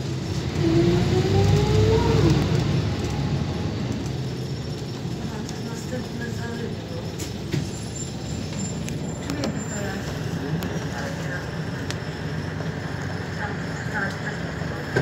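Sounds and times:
bus diesel engine rumbling: 0:00.0 - 0:15.0.

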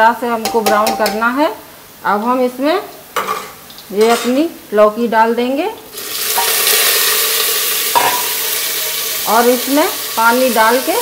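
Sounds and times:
vegetables sizzling in hot oil: 0:05.9 - 0:11.0.

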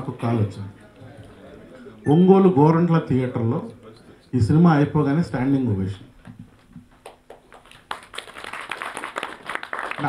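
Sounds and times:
audience applause: 0:07.0 - 0:10.0.

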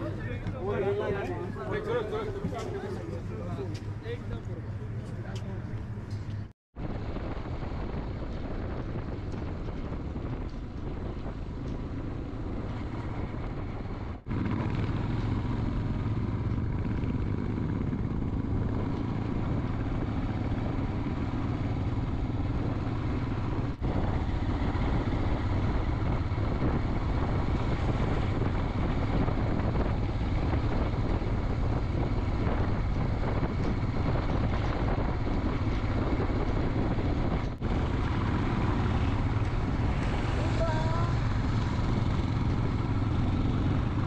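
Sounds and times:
motorcycle engine running: 0:00.0 - 0:44.0
wind rushing over microphone: 0:00.0 - 0:44.0.

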